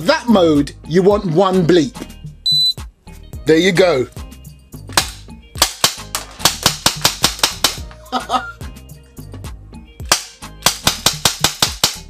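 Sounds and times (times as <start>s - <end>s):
airsoft pistol shots: 5.0s - 7.8s, 10.0s - 12.0s.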